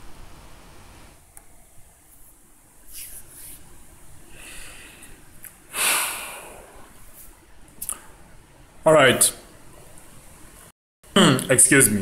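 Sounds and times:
short breath: 4.3 - 6.8.

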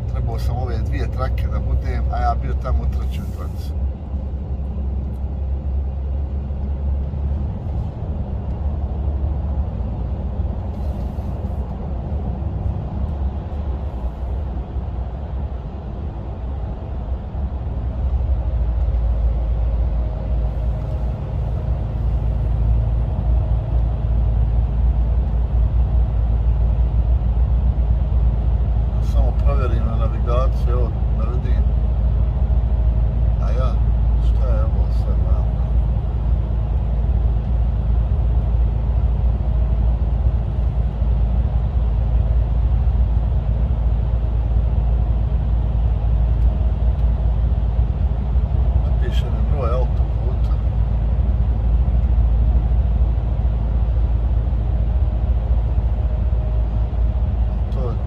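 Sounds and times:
truck engine and tyres rumbling: 0.0 - 58.0.

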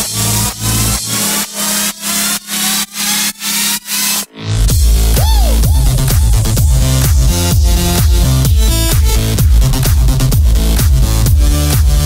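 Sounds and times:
buzzing synth pumping: 4.5 - 12.0.

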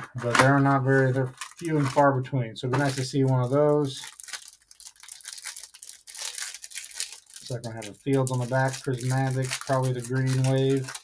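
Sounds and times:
trading cards rustling and clicking: 0.1 - 2.0, 2.7 - 11.0.

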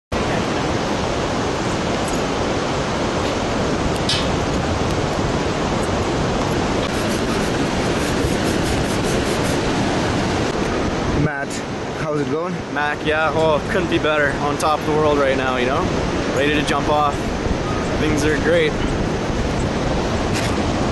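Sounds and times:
loud steady rushing noise: 0.1 - 20.9.

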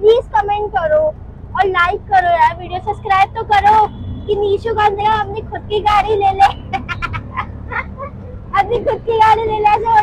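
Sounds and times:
engine droning: 0.0 - 10.0
passengers laughing: 6.6 - 8.2.

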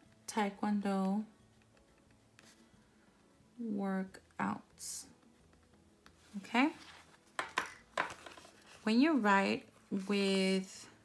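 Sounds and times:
woman speaking: 3.6 - 5.1, 6.3 - 6.8, 8.8 - 11.0
paper rustling: 6.2 - 8.9.

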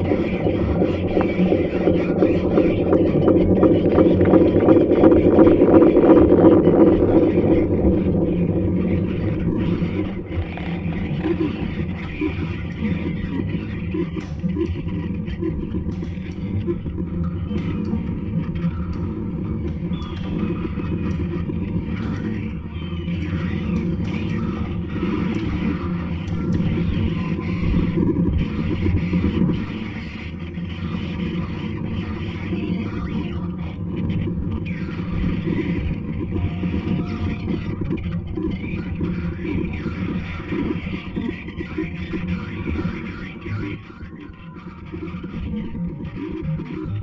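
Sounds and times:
experimental electronic music: 0.0 - 47.0.

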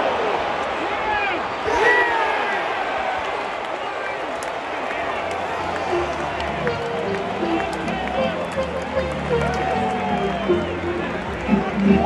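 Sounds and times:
crowd chatter in stadium: 0.0 - 12.0
music over sound system: 5.9 - 12.0.

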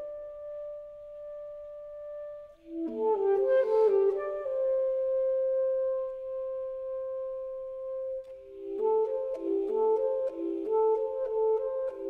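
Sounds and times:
saxophone playing: 0.0 - 12.0.

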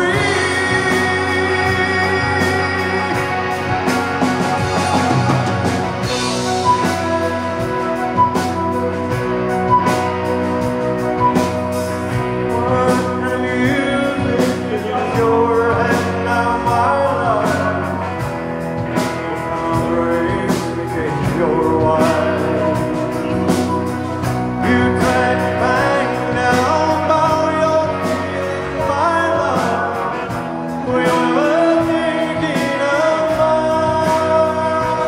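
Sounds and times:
man singing into a microphone: 0.0 - 4.2, 12.2 - 23.8, 24.6 - 35.0
drums: 0.0 - 35.0
live band playing: 0.0 - 35.0.

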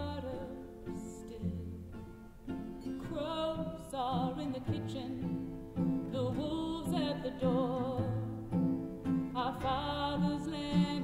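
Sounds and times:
cello: 0.0 - 11.0
strummed acoustic guitar: 0.0 - 11.0
woman singing folk song: 0.0 - 11.0.

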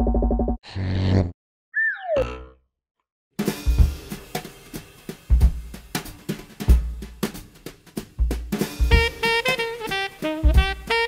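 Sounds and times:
music with drum kit: 3.4 - 11.0.

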